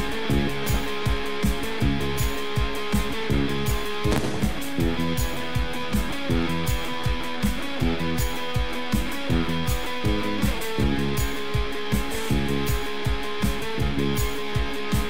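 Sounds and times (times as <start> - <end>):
electric guitar: 0.0 - 15.0
steady drum beat: 4.1 - 5.7.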